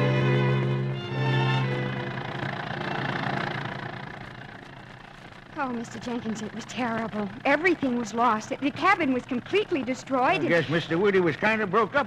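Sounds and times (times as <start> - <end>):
bowed string music: 0.0 - 3.9
old car engine rumble: 0.0 - 12.0.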